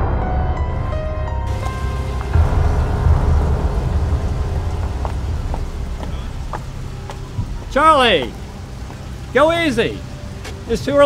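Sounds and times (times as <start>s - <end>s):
wind buffeting microphone: 1.5s - 9.3s.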